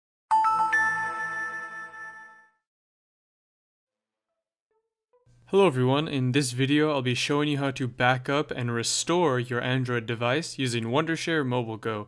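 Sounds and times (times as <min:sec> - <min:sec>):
rising bell-like chime: 0:00.3 - 0:02.6.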